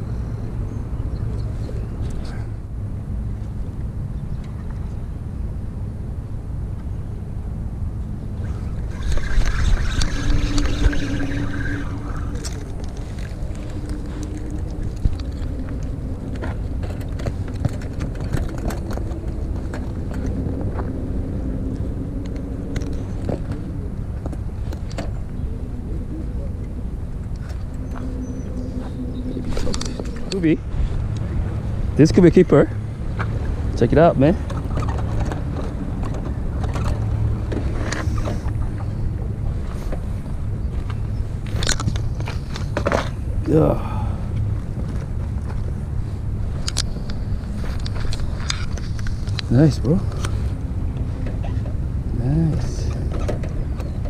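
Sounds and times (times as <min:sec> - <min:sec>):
engine droning: 0:00.0 - 0:54.0
low rumble: 0:00.0 - 0:54.0.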